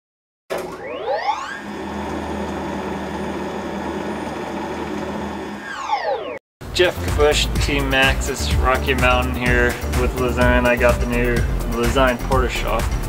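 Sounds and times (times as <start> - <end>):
whirring tone sweeping in pitch: 0.7 - 1.9, 5.3 - 6.4.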